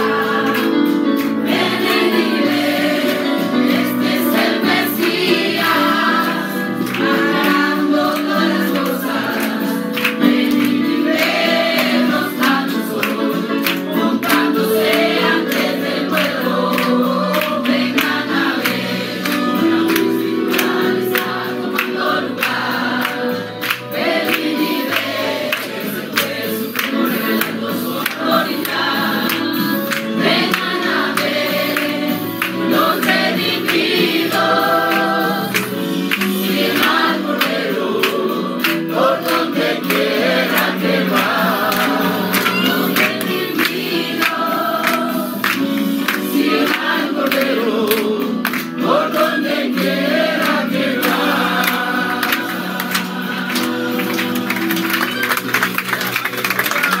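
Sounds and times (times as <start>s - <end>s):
congregation singing a worship song: 0.0s - 57.0s
hands clapping to the beat: 0.0s - 57.0s.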